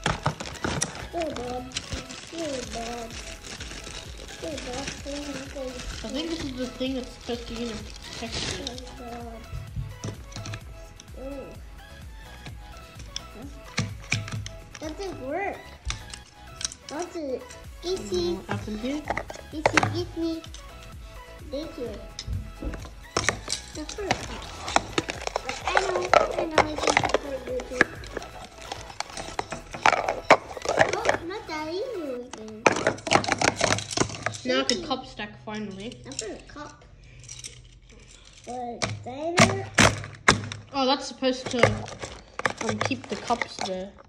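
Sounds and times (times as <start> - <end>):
plastic cups clacking: 0.0 - 11.2, 12.2 - 21.0, 21.6 - 44.0
people talking: 1.1 - 3.2, 4.4 - 9.4, 11.2 - 11.6, 14.8 - 15.6, 16.9 - 20.5, 21.4 - 22.1, 25.6 - 28.0, 34.4 - 36.7, 40.8 - 41.9, 42.6 - 44.0.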